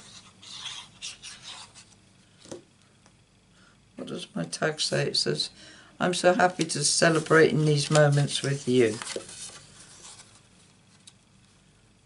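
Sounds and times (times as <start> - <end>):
paper sheets rustling and sliding: 6.4 - 11.1.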